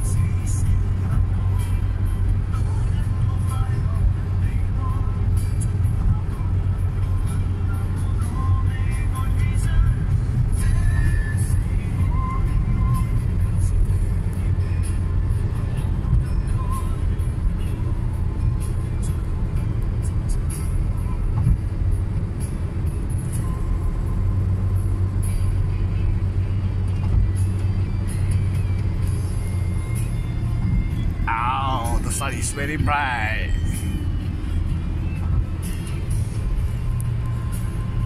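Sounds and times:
car road and engine rumble: 0.0s - 38.0s
faint music: 0.0s - 38.0s
person speaking: 31.2s - 33.6s.

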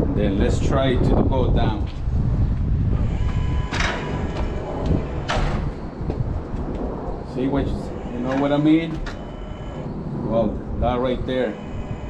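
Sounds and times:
steady low rumble: 0.0s - 12.0s
hand truck motor whine: 2.9s - 6.2s, 7.7s - 10.2s, 11.4s - 12.0s
harsh clunks: 3.0s - 5.8s, 8.0s - 9.9s.

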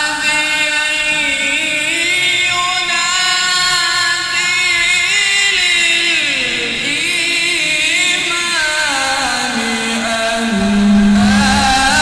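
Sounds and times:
person chanting recitation: 0.0s - 12.0s.

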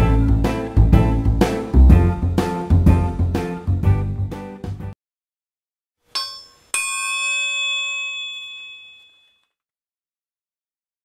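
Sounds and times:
metallic bell dings: 6.1s - 9.5s.

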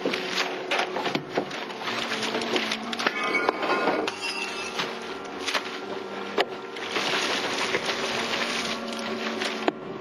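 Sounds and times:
gasoline pouring and splashing: 6.8s - 9.7s.

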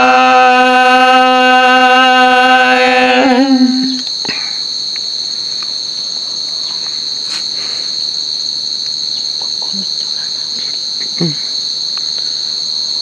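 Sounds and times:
insects trilling: 0.0s - 13.0s.

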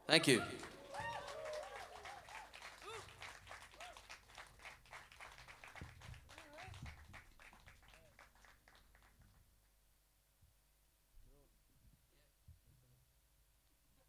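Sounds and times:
audience applause: 0.0s - 9.2s
whoops and cheers: 0.3s - 3.2s, 3.8s - 4.0s.

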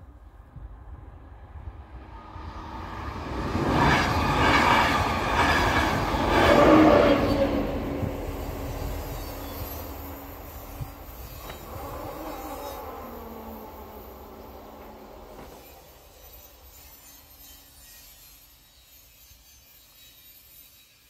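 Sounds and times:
train wheels clattering on rails: 3.6s - 18.3s.

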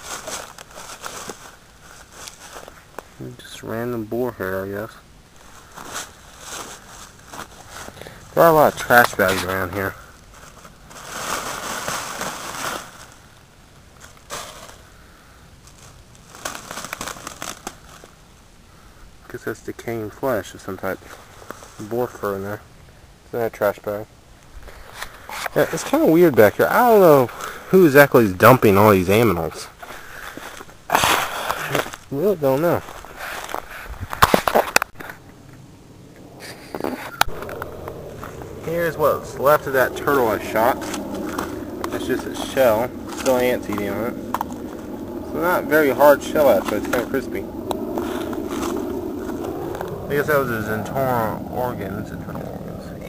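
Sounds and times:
footsteps in dry leaf litter: 0.0s - 3.1s, 10.3s - 13.2s
dry leaves rustling: 0.0s - 3.2s, 5.4s - 8.0s, 10.3s - 14.8s, 15.6s - 18.2s.

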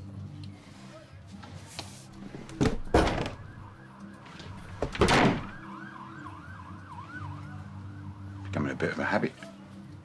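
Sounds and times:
door shutting with a thud: 2.2s - 3.5s, 4.6s - 5.6s
siren sweeping up and down: 5.5s - 8.2s.

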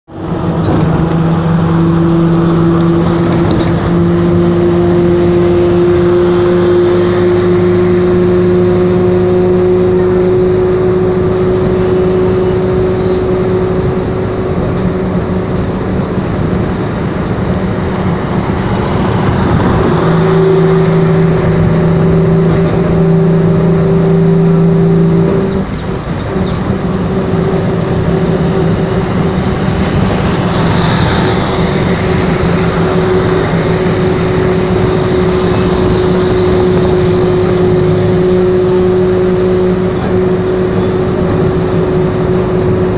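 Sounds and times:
road noise: 0.0s - 42.9s
vehicle engine droning: 0.0s - 42.9s.

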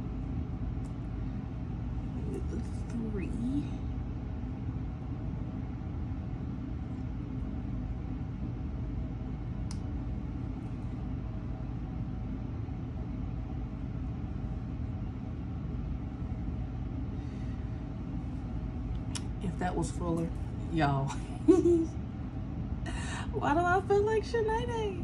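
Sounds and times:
faint hum: 0.0s - 25.0s
low background rumble: 0.0s - 25.0s.

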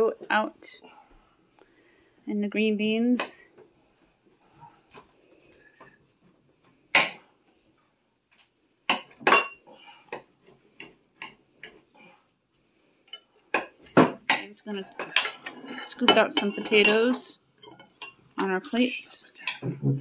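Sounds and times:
cutlery scraping ceramic platter: 13.1s - 19.7s.

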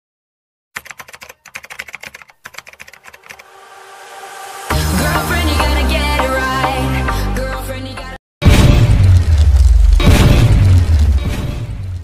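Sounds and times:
keyboard typing: 0.8s - 3.5s
noise swell: 3.2s - 6.0s.

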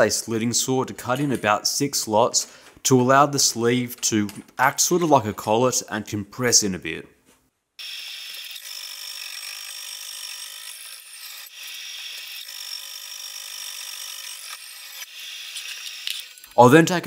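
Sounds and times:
saw cutting steel whine: 7.8s - 16.5s.

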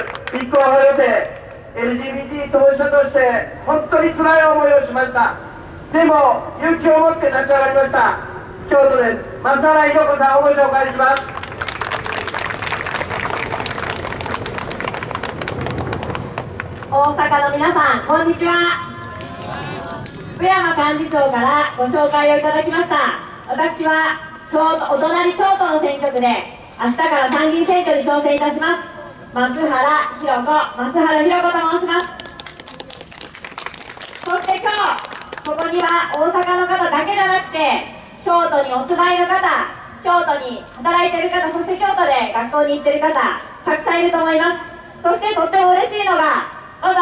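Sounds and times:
crowd applauding: 11.2s - 16.9s, 32.0s - 36.2s.

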